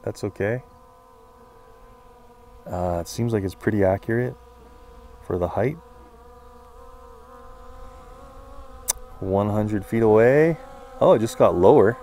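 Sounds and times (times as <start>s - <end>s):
sharp click: 8.8s - 9.0s.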